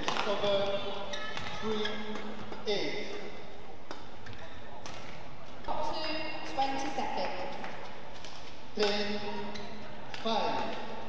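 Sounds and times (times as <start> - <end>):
indoor sports hall background noise: 0.0 - 11.0.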